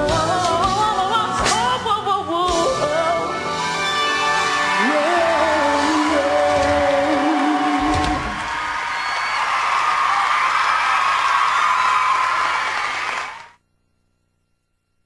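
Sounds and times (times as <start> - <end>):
crowd cheering and screaming: 4.0 - 13.6.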